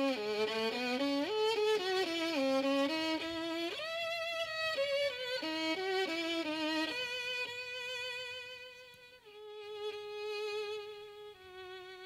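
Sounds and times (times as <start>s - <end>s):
solo violin melody: 0.0s - 12.0s.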